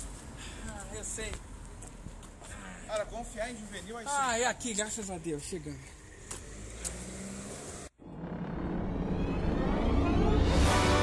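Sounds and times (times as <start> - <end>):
rising swell into music: 8.0 - 11.0.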